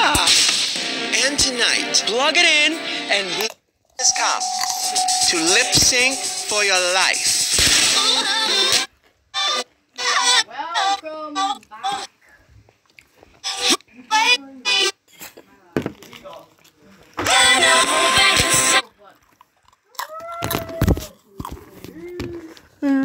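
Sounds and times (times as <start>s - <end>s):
music: 0.0s - 3.4s, 4.0s - 9.5s, 17.2s - 18.8s
cartoon character vocalizations: 9.4s - 12.1s, 13.4s - 15.0s.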